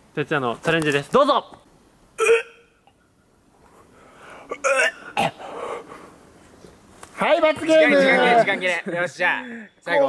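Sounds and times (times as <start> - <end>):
breathy noise: 3.6 - 6.5.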